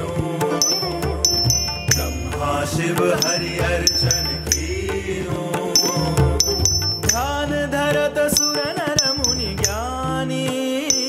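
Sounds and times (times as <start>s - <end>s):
person singing ornamented lines: 0.0s - 11.0s
small hand cymbals: 0.5s - 5.0s, 5.8s - 7.5s, 8.3s - 10.0s.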